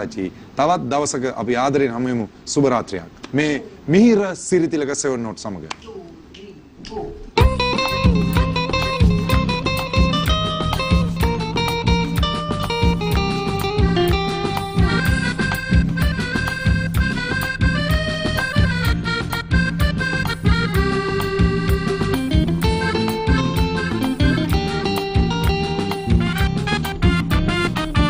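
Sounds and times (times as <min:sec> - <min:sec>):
hand drums beating: 0:07.4 - 0:19.0, 0:19.6 - 0:28.0
keyboard melody: 0:07.4 - 0:28.0
low bass line: 0:07.4 - 0:28.0.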